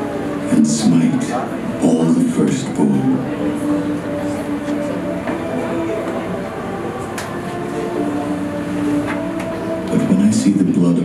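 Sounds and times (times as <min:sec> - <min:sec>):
low musical drone: 0:00.0 - 0:11.0.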